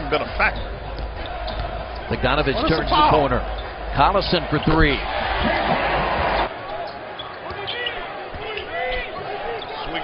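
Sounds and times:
loud crowd noise: 0.0s - 10.0s
ball bouncing: 0.9s - 2.1s.

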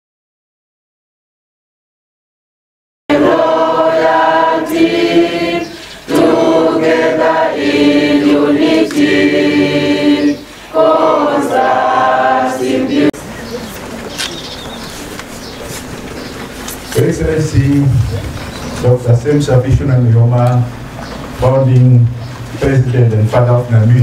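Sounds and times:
group singing: 3.1s - 13.2s
background of gathering: 3.1s - 24.0s.

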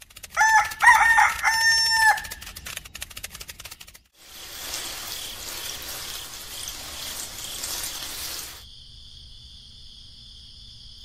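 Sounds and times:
rooster crowing: 0.4s - 2.4s.

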